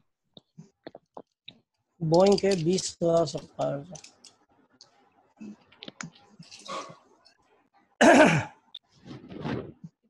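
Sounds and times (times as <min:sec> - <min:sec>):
faint scattered clicks: 0:00.4 - 0:05.0.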